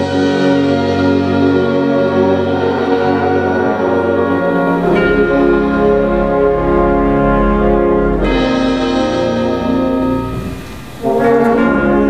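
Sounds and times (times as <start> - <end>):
deep low-register notes: 0.0 - 12.0
wind ensemble brass chords: 0.0 - 12.0.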